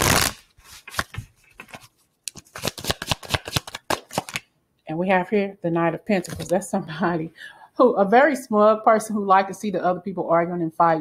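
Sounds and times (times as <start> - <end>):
cards being shuffled: 0.0 - 4.5.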